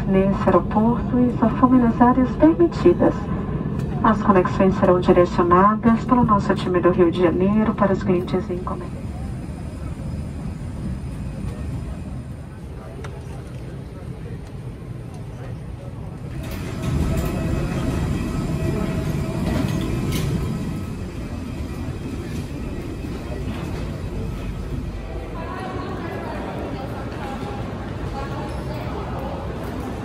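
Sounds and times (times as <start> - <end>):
airliner cabin rumble: 0.0 - 27.1
aircraft rumble on the ground: 0.0 - 28.1
faint passenger voices: 0.0 - 30.0.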